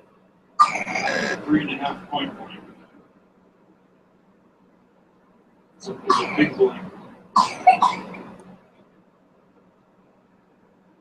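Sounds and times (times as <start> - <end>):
person coughing: 6.1 - 6.6, 7.4 - 8.2.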